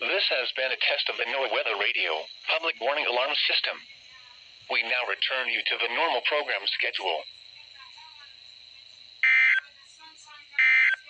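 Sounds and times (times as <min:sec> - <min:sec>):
weather alert radio beeping: 0:09.2 - 0:09.7, 0:10.6 - 0:11.0.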